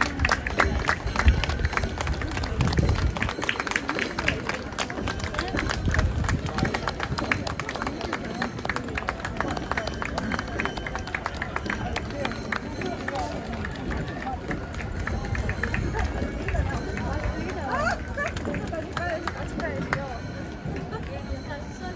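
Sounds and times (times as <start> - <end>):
crowd chatter: 0.0 - 21.9
marchers' footsteps on pavement: 0.0 - 21.9.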